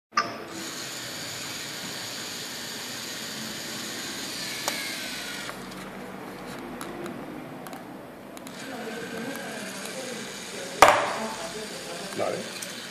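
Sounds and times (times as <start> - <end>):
servo motors whirring: 0.5 - 6.6, 8.4 - 12.9
ball landing with a thump: 10.8 - 11.2.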